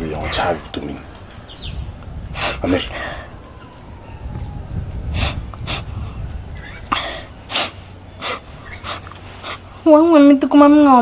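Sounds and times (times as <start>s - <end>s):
girl sniffling: 6.6s - 9.7s.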